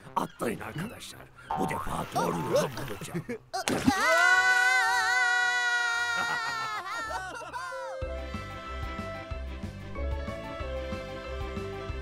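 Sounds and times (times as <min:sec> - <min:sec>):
music: 0:00.0 - 0:01.4, 0:07.1 - 0:12.0
falling cry: 0:03.6 - 0:09.0.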